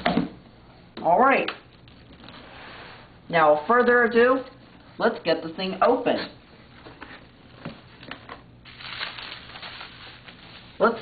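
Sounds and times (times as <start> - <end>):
plastic packing sheet crinkling: 7.2 - 11.0.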